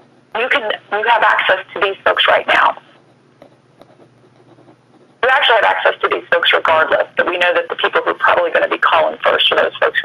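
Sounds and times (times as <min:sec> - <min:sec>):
faint low hum: 0:00.0 - 0:10.0
person speaking over phone line: 0:00.4 - 0:02.8, 0:05.2 - 0:10.0.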